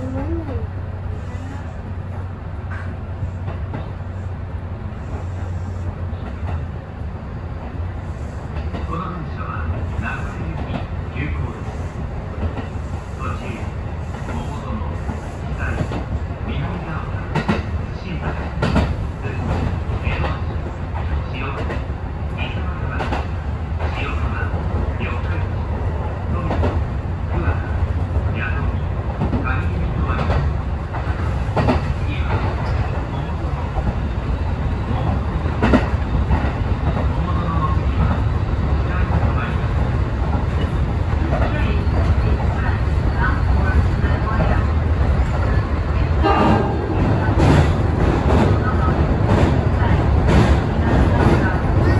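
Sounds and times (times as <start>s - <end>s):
train wheels rumbling on rail: 0.0s - 51.9s.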